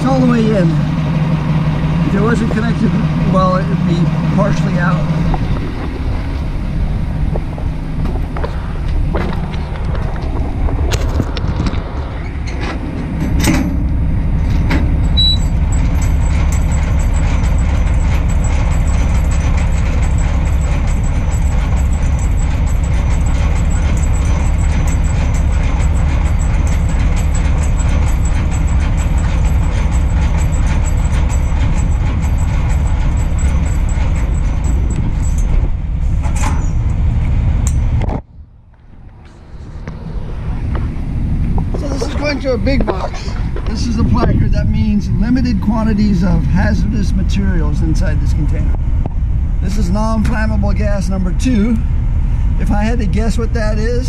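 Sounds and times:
landing gear crank grinding: 7.3s - 37.0s
rapid gear clicking: 12.8s - 35.7s.

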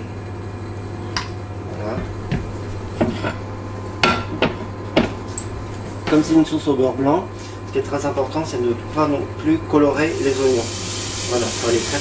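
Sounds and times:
steady low hum: 0.0s - 11.2s.

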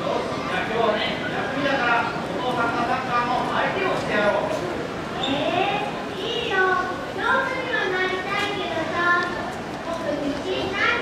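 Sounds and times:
children's voices: 0.0s - 2.0s, 3.5s - 11.0s.

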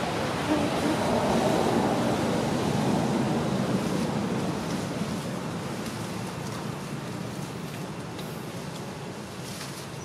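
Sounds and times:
outdoor background rushing: 0.0s - 10.0s.

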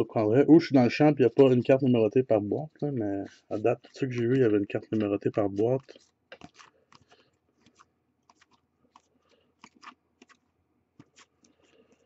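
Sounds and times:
trading cards being flipped: 3.2s - 11.6s.

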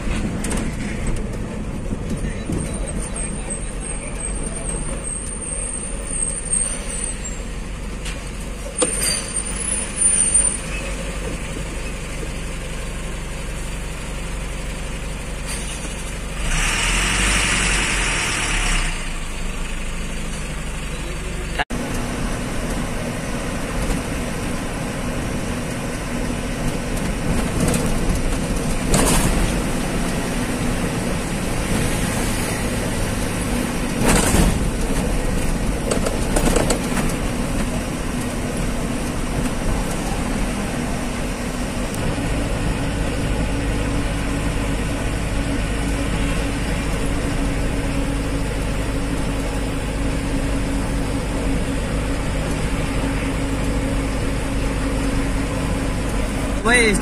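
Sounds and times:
truck engine and road drone: 0.0s - 57.0s.

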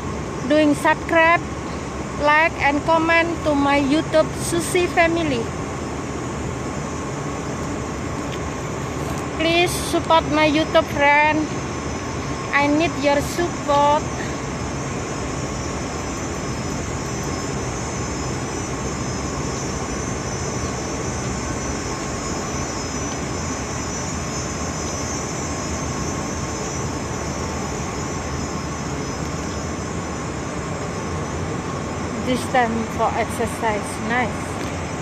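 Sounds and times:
city roar: 0.0s - 35.0s
faint steady whine: 0.0s - 35.0s.

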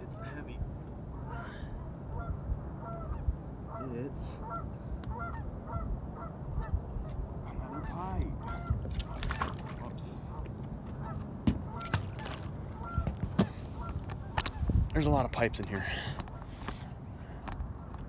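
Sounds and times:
geese honking: 1.1s - 14.7s.

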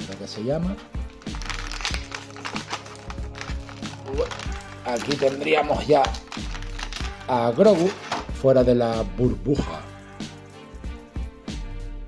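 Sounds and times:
background music: 0.0s - 12.0s
plastic packaging crinkling: 1.0s - 8.2s.

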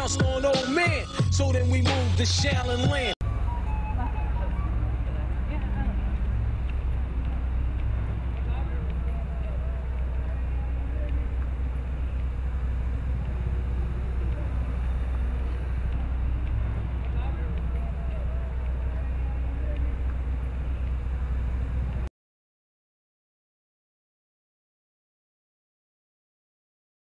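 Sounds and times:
steady low rumble: 0.0s - 22.1s
distant people talking: 3.8s - 20.9s.

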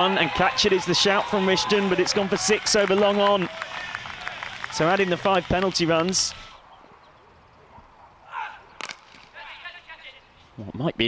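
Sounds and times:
distant shouts: 0.0s - 6.7s, 7.7s - 10.4s
cricket bat striking ball: 8.8s - 9.3s.

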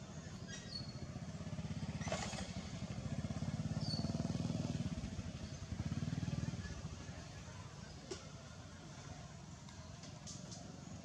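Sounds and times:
small engine puttering: 0.4s - 4.8s.

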